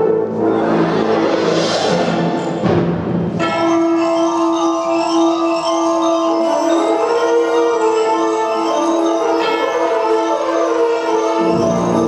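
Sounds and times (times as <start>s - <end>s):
mallet percussion notes: 0.0s - 12.0s.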